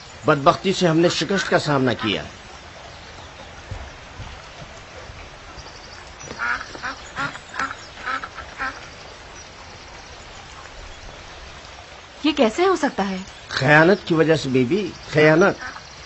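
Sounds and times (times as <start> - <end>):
bird calling: 0.0 - 16.0
faint steady background noise: 0.0 - 16.0.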